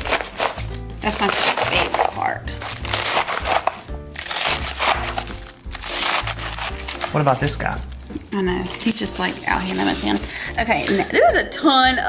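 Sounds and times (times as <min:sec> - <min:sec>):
knife chopping lettuce: 0:00.0 - 0:07.6
background music: 0:00.0 - 0:12.0.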